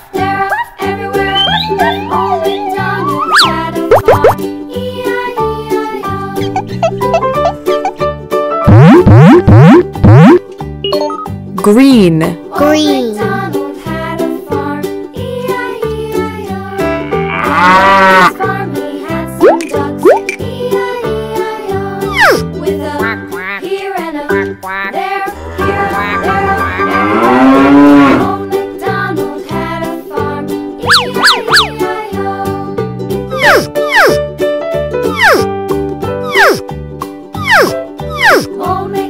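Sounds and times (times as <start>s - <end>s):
upbeat children's music: 0.0s - 39.0s
swooping pitch sound effect: 1.4s - 4.4s, 8.7s - 10.4s, 22.1s - 22.4s, 30.8s - 31.8s, 33.3s - 34.2s, 35.1s - 35.5s, 36.2s - 36.6s, 37.4s - 38.5s
cow mooing: 16.8s - 18.4s, 25.3s - 28.3s.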